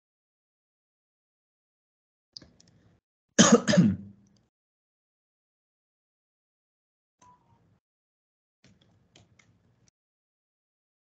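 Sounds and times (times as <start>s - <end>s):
person coughing: 3.4s - 4.1s.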